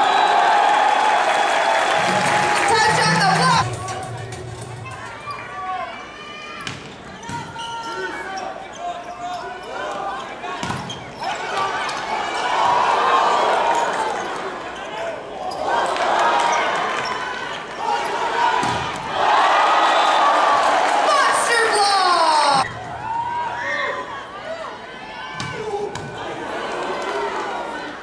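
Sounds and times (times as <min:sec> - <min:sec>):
crowd cheering: 0:00.0 - 0:06.6, 0:11.2 - 0:28.0
players shouting: 0:00.0 - 0:08.8, 0:09.4 - 0:28.0.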